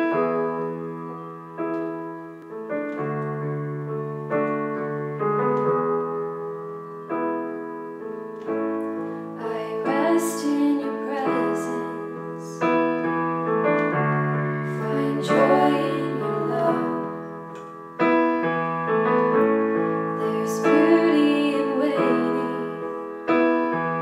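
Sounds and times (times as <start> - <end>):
piano playing slow chords: 0.0 - 24.0
woman singing: 9.4 - 12.6, 14.7 - 17.4, 20.2 - 23.1.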